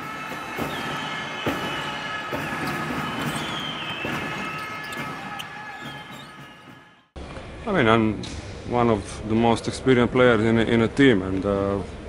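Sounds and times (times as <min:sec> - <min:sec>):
shoes squeaking: 0:00.5 - 0:06.9.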